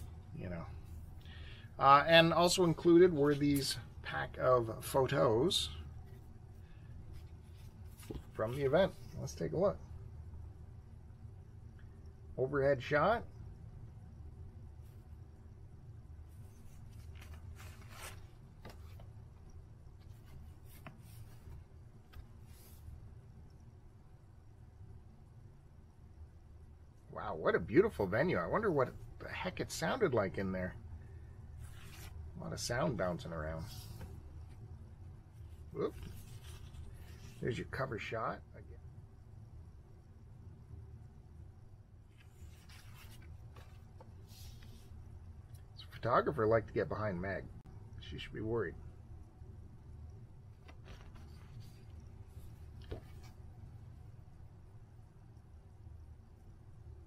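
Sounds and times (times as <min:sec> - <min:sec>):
low steady hum: 0:00.0 - 0:57.0
photo prints rustling and sliding: 0:07.1 - 0:09.3, 0:16.3 - 0:23.0, 0:31.6 - 0:34.6, 0:35.4 - 0:37.7, 0:42.1 - 0:45.0, 0:50.5 - 0:53.5.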